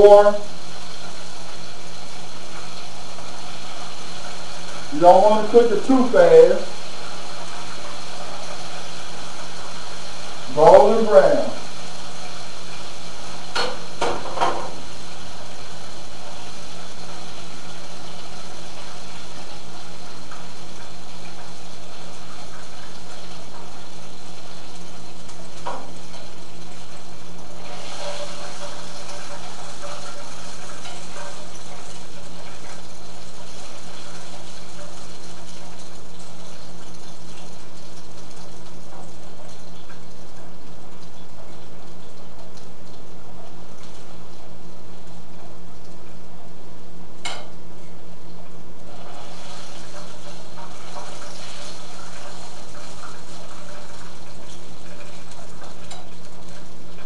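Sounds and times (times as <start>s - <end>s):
fish frying in hot oil: 0.0s - 57.0s.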